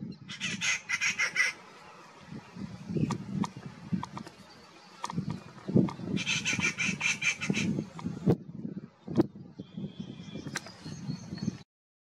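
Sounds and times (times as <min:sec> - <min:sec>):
bird calling with harsh clucking notes: 0:00.1 - 0:02.1, 0:02.9 - 0:08.2.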